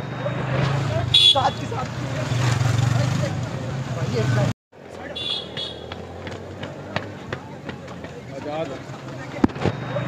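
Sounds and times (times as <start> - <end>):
footsteps jogging on a footbridge: 5.5 - 9.3.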